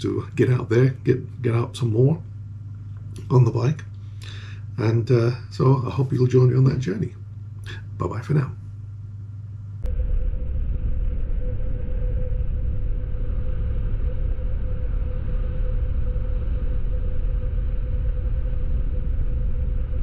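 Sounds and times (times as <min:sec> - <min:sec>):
heavy low rumble: 0:00.0 - 0:20.0
motorcycle engine drone: 0:09.6 - 0:20.0.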